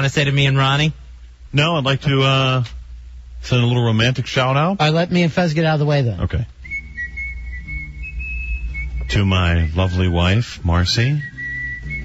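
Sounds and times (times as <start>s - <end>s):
low hum: 6.2s - 12.0s
high whistling tone: 6.6s - 12.0s.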